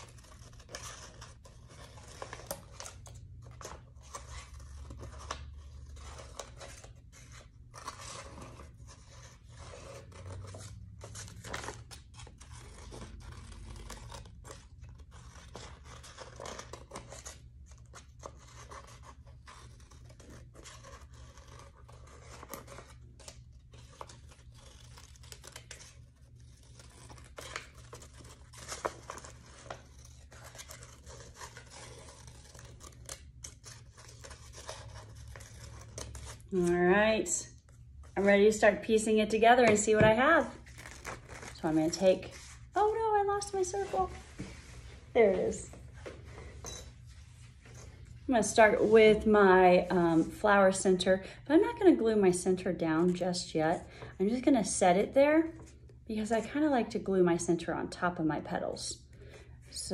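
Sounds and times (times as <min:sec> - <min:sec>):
scissors snipping paper: 0:00.0 - 0:37.0.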